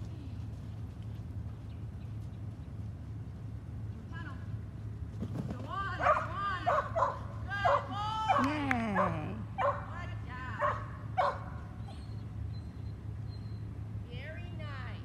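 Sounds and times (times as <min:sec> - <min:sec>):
dog yipping: 0:10.6 - 0:13.6.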